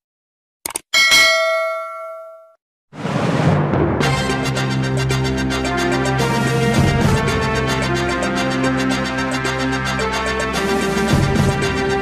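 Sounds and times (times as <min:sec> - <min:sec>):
notification bell ding: 0:01.0 - 0:02.6
music: 0:03.1 - 0:12.0.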